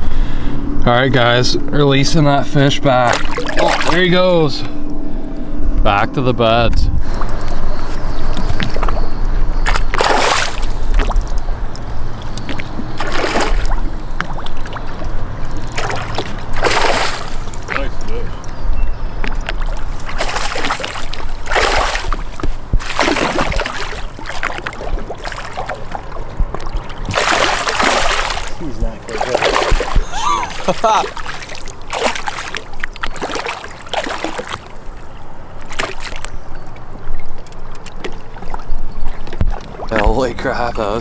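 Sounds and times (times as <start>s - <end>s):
low rumble: 0.0s - 9.7s
fish splashing in water: 3.1s - 4.1s, 7.4s - 18.1s, 19.2s - 40.2s.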